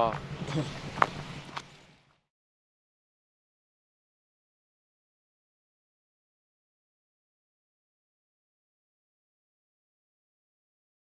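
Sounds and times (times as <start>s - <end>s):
faint outdoor noise: 0.0s - 2.3s.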